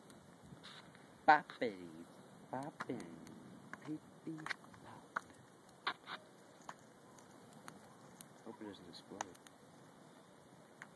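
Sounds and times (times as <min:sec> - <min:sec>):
popcorn popping: 0:09.1 - 0:09.6.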